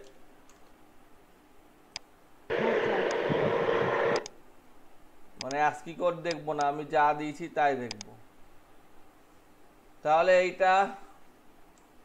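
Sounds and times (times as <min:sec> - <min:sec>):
click: 0:00.0 - 0:00.7, 0:04.1 - 0:04.4, 0:05.4 - 0:05.6, 0:07.9 - 0:08.1, 0:11.7 - 0:11.9
static hiss: 0:01.8 - 0:10.5.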